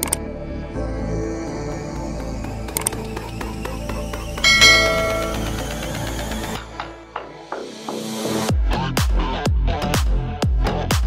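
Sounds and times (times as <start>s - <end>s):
background music with steady beat: 4.4s - 5.8s
notification bell chime: 4.5s - 5.6s.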